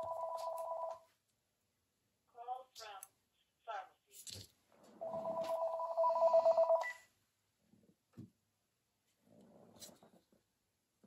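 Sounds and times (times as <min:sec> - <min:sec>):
phone ringing with warbling trill: 0:05.0 - 0:07.0.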